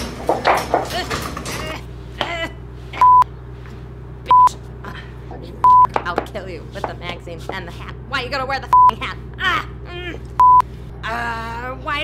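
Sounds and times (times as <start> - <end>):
censor beeps: 3.0 - 3.3, 4.3 - 4.6, 5.6 - 5.9, 8.7 - 9.0, 10.4 - 10.7
person swearing: 9.2 - 10.4.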